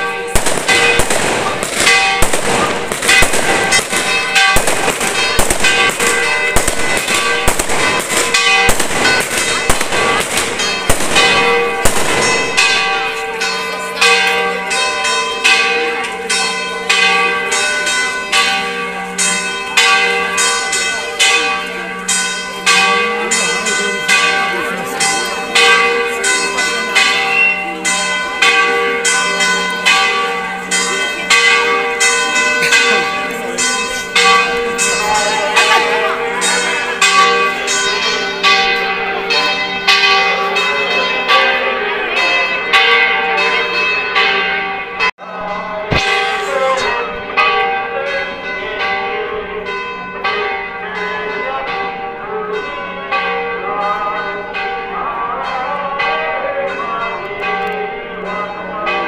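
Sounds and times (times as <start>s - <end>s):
church bells ringing a peal: 0.0s - 59.0s.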